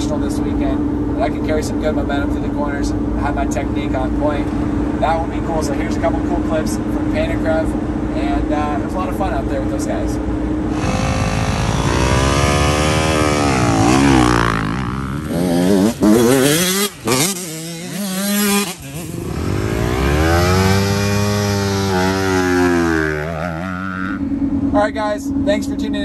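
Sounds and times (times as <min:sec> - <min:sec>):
dirt bike engines revving: 0:00.0 - 0:26.0.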